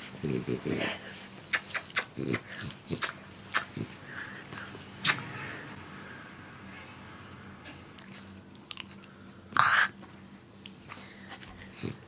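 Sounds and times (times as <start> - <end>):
dog grunting: 0.0 - 4.8.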